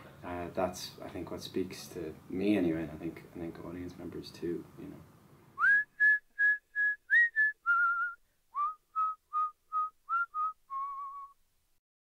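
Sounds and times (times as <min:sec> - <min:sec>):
person whistling a tune: 0:05.6 - 0:11.4.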